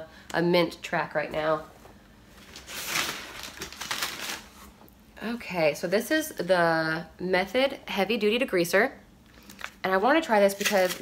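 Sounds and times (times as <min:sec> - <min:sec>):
packing material rustling: 0:02.3 - 0:04.8.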